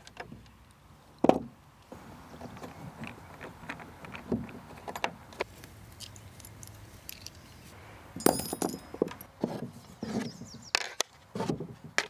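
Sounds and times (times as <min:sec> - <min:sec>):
drawer rubbing: 0:09.4 - 0:10.7.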